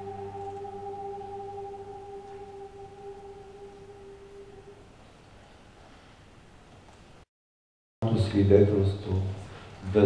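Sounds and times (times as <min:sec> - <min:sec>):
cello bowed note: 0:00.0 - 0:04.8.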